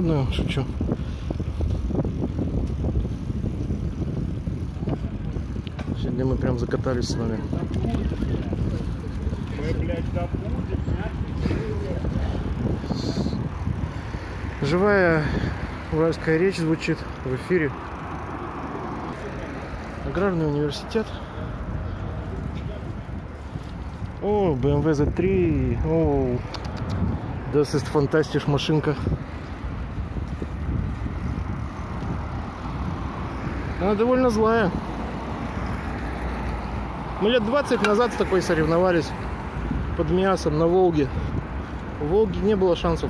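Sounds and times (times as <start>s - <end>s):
bike knocking and rattling: 0.0s - 34.7s, 35.6s - 39.1s
bicycle tyres rumbling on pavement: 0.0s - 43.0s.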